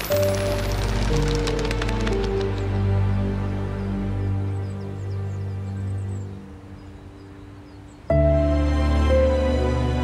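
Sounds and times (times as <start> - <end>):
background music: 0.0 - 10.0
faint outdoor ambience: 0.0 - 10.0.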